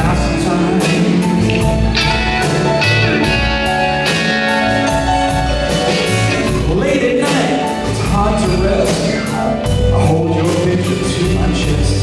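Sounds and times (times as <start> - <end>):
band playing ballad: 0.0 - 12.0
electric guitar: 0.0 - 12.0.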